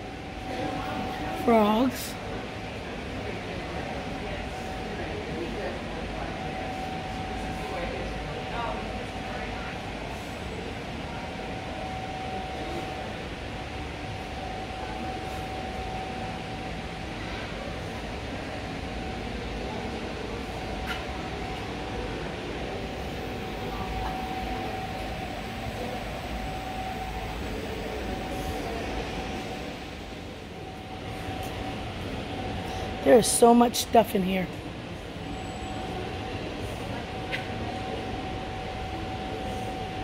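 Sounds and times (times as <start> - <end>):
mid-pitched hum: 0.0 - 40.0
rumbling room noise: 0.0 - 40.0.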